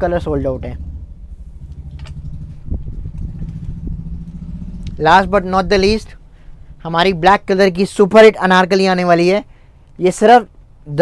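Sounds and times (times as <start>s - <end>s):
low mechanical hum and rumble: 0.0s - 11.0s.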